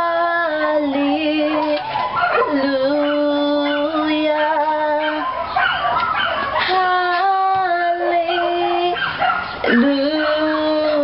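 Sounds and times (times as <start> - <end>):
woman singing a hymn: 0.0 - 5.5, 6.4 - 11.0
dog howling and whimpering: 0.0 - 11.0.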